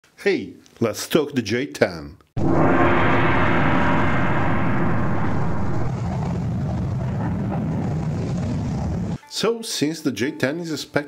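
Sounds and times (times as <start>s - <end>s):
loud jet engine rush: 2.4s - 6.6s.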